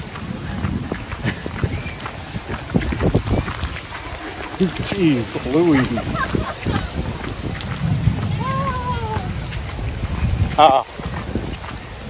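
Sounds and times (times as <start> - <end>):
heavy rain pattering: 0.0 - 12.0
low rumble: 0.0 - 12.0.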